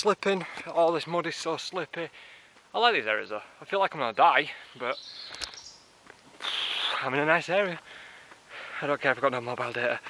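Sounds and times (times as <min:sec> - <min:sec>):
faint outdoor background: 0:00.0 - 0:10.0
small click: 0:05.3 - 0:05.6
person inhaling loudly: 0:06.4 - 0:07.0.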